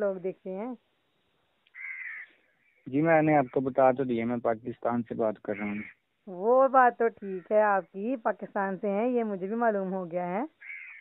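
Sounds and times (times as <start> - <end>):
animal call through phone line: 1.7 - 2.4, 5.4 - 6.0, 10.6 - 11.0.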